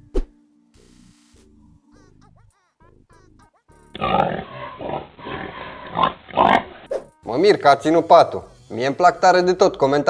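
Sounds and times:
pig grunting: 4.0 - 6.9.

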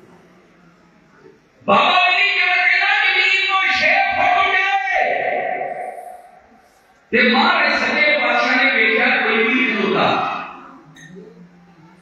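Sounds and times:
man chanting through loudspeakers: 1.6 - 6.3, 7.1 - 10.7.

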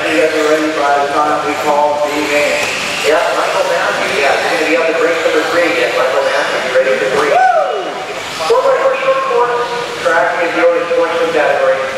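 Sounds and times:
indistinct voices in echoing hall: 0.0 - 11.9.

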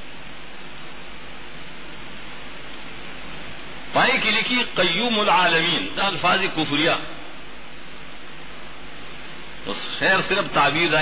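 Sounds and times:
background hiss: 0.0 - 11.0
man lecturing: 3.9 - 7.2, 9.6 - 11.0.

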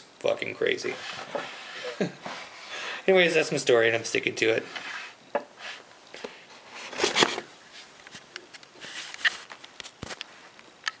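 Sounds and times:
recording device handling noise: 4.6 - 11.0.

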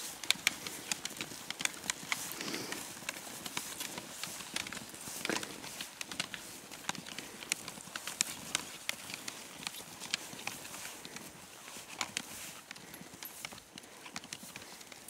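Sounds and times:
snowshoe footsteps crunching snow: 0.0 - 15.0.

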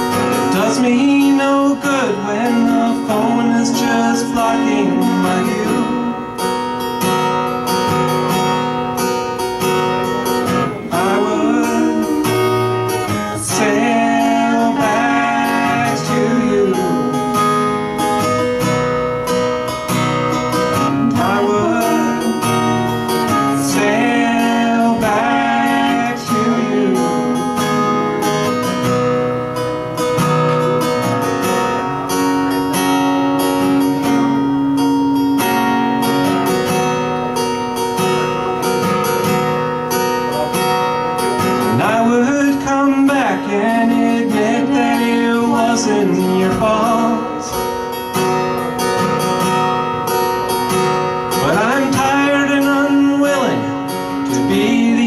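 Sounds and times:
acoustic guitar strumming: 0.0 - 55.0
held keyboard notes: 0.0 - 55.0.

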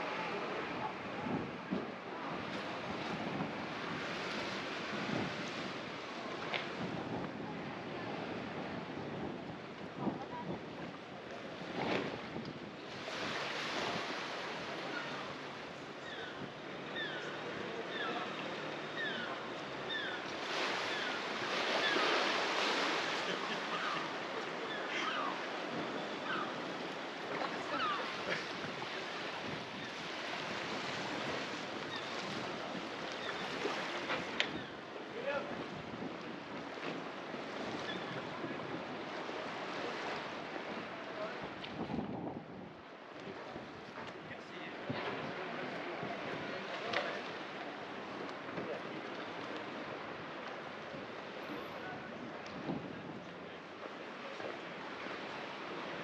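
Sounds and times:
wind on microphone: 0.0 - 18.2, 18.9 - 53.7
small waves washing onto sand: 0.0 - 56.0.

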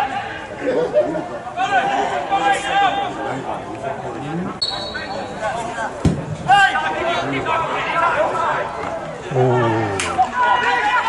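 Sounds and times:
referee's whistle blast: 4.6 - 5.4
players shouting: 6.4 - 11.0.

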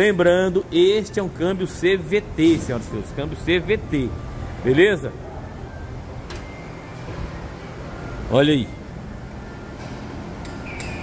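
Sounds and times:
workshop background hum: 0.0 - 11.0.

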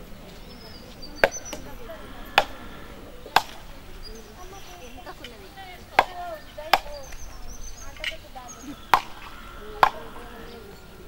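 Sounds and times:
coconuts cracked against stone: 1.2 - 1.7, 2.4 - 2.7, 3.4 - 3.9, 5.8 - 7.4, 8.8 - 10.2.

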